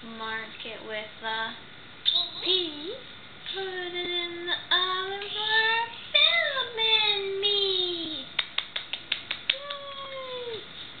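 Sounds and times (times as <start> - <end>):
toddler clapping: 8.4 - 10.6.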